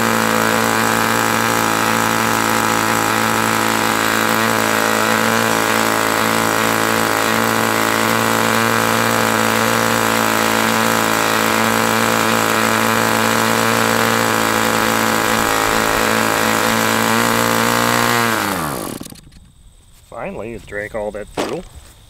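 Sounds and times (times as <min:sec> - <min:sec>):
model airplane engine running: 0:00.0 - 0:19.4.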